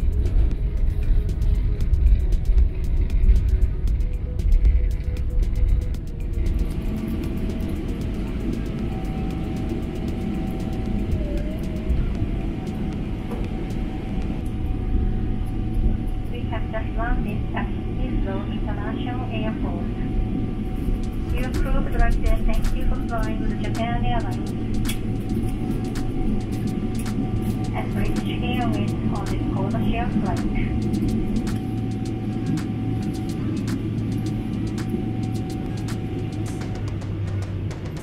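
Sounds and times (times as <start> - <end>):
airplane cabin rumble: 0.0 - 38.0
voice over cabin pa: 16.4 - 20.0, 27.8 - 30.7.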